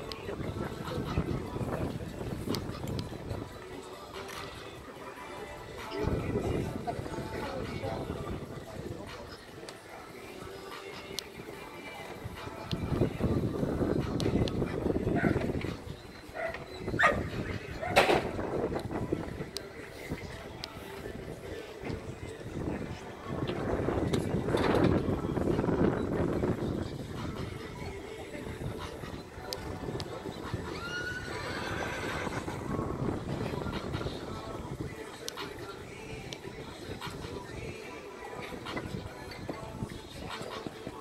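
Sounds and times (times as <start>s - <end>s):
background voices: 0.0s - 41.0s
horse neighing: 30.7s - 32.6s.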